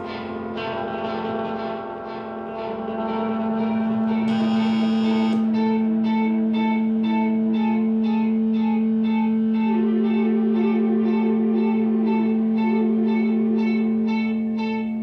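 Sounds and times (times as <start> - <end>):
electric guitar drone: 0.0 - 15.0
looping pulsed guitar figure: 0.0 - 15.0
bright high sound: 4.3 - 5.6.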